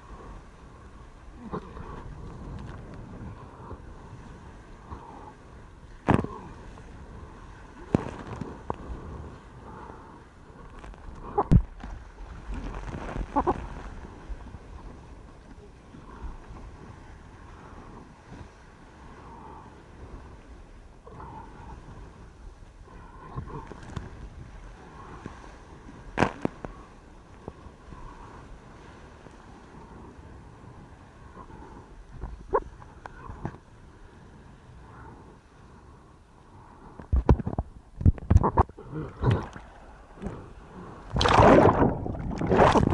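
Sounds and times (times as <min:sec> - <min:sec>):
sea water rushing and splashing: 0:00.0 - 0:42.9
sharp knocks on surfboard: 0:06.0 - 0:06.3.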